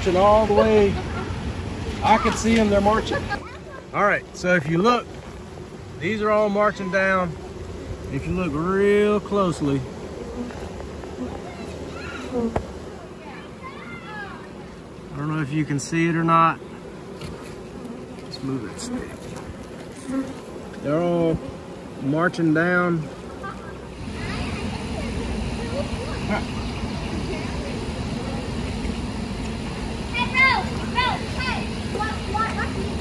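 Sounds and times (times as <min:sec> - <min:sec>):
bee swarm buzzing: 0:00.0 - 0:33.0.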